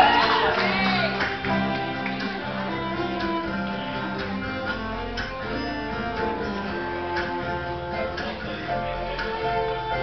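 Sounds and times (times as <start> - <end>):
country band playing: 0.0 - 10.0.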